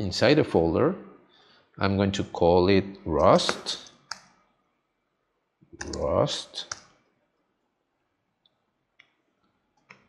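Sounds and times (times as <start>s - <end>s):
person speaking: 1.8s - 4.1s, 5.8s - 6.8s.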